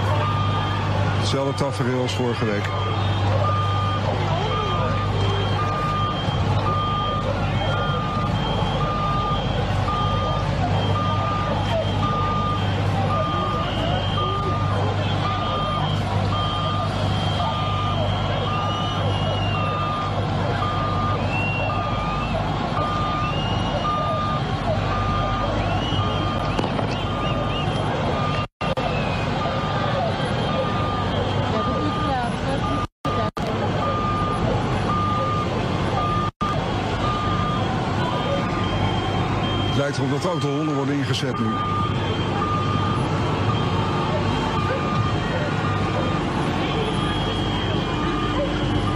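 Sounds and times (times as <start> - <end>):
large crowd noise: 0.0 - 48.9
reversing alarm beeping: 0.0 - 48.9.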